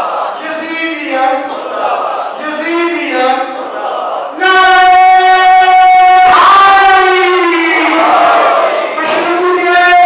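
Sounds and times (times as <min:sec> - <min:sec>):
man chanting over loudspeaker: 0:00.0 - 0:10.0.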